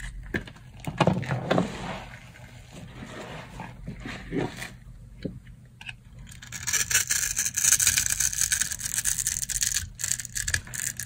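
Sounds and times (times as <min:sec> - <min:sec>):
knife crunching through soap: 0:06.3 - 0:11.0.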